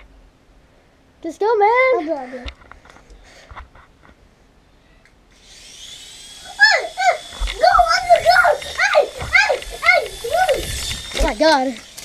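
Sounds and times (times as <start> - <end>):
toy drone motors whining: 5.3 - 12.0
child whooping: 6.5 - 10.8.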